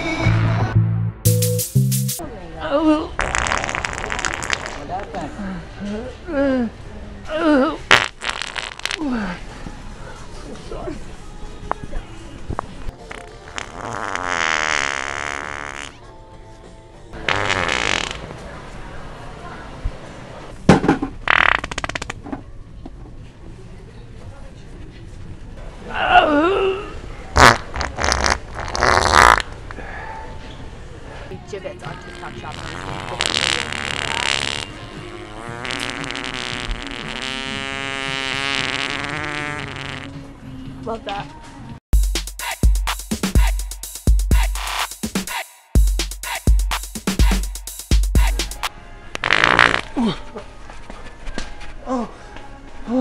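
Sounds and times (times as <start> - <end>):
fart noise toy: 3.2 - 5.0, 7.9 - 9.1, 13.0 - 16.0, 17.2 - 18.4, 21.2 - 22.2, 27.4 - 29.6, 32.5 - 40.2, 49.2 - 50.2.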